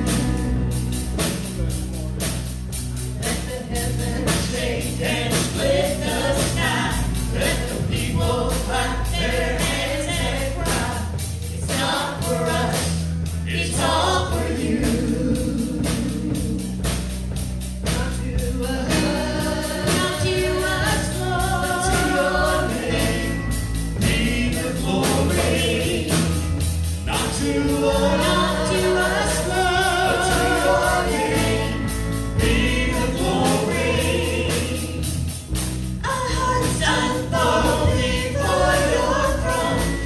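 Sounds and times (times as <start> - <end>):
bass guitar: 0.0 - 40.0
drum kit beat: 0.0 - 40.0
people singing into microphones: 3.2 - 40.0.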